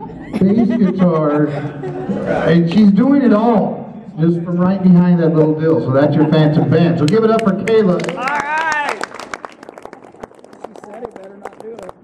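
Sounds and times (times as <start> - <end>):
audience clapping: 7.0 - 12.0.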